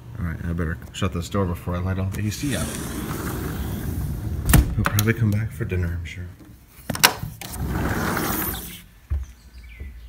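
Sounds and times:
sliding glass door rolling open: 0:02.1 - 0:04.7, 0:07.4 - 0:08.9
door thump: 0:04.4 - 0:05.0
faint bird chirp: 0:09.2 - 0:10.0.

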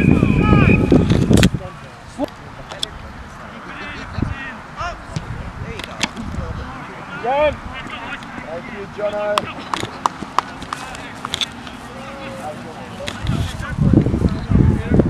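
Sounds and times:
distant shouts and calls: 0:00.0 - 0:02.1, 0:06.6 - 0:13.8.

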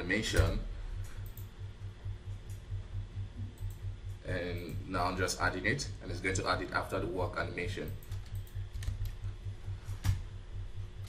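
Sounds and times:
low pulsing hum: 0:00.0 - 0:11.0
computer keys clicking: 0:01.2 - 0:01.5, 0:03.5 - 0:03.9, 0:07.8 - 0:09.2.

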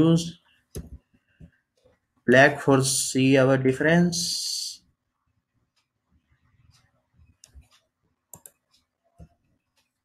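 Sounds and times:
keyboard and mouse clicks: 0:00.7 - 0:02.0, 0:05.8 - 0:10.0.

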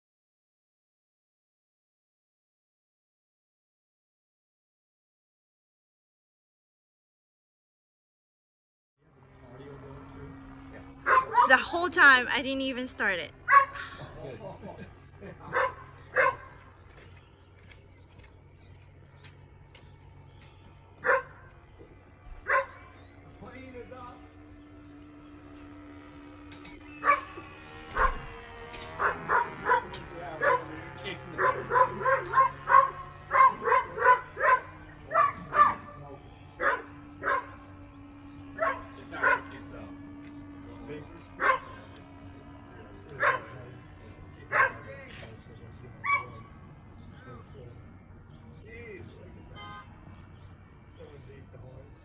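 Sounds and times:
dog barking: 0:11.0 - 0:11.5, 0:13.5 - 0:13.8, 0:15.5 - 0:16.6, 0:21.0 - 0:21.5, 0:22.4 - 0:22.8, 0:27.0 - 0:27.3, 0:27.9 - 0:28.2, 0:29.0 - 0:30.7, 0:31.4 - 0:36.0, 0:36.6 - 0:37.6, 0:38.6 - 0:39.5, 0:41.4 - 0:41.8, 0:43.1 - 0:43.6, 0:44.5 - 0:44.9, 0:46.0 - 0:46.5.

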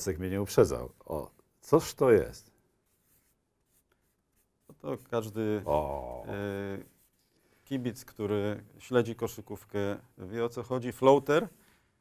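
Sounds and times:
marker pen writing on paper: 0:02.8 - 0:04.8.

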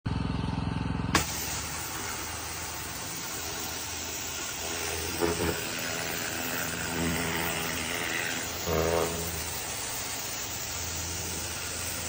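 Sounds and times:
pressure washer motor humming: 0:00.1 - 0:12.0
water jet hissing on metal: 0:01.2 - 0:12.0.

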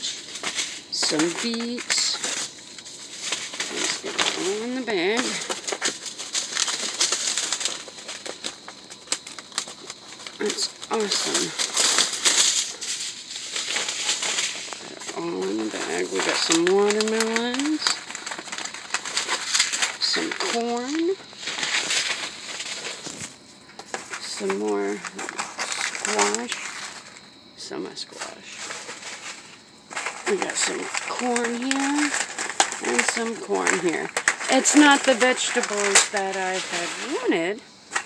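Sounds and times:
cardboard and paper packets handled: 0:00.0 - 0:38.0
woman speaking: 0:01.0 - 0:02.3, 0:03.7 - 0:05.5, 0:10.4 - 0:11.6, 0:14.9 - 0:18.0, 0:20.0 - 0:21.2, 0:24.2 - 0:26.6, 0:30.3 - 0:32.2, 0:32.8 - 0:37.7.

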